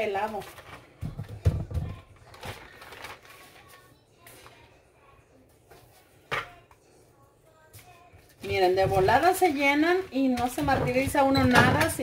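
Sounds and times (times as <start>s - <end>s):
plastic sheet rustling: 0.0s - 4.6s.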